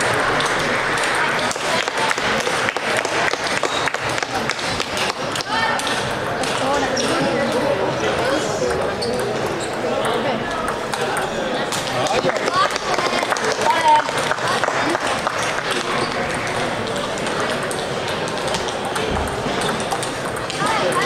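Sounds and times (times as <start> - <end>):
babble of voices: 0.0 - 21.0
table tennis ball clicking: 16.9 - 21.0.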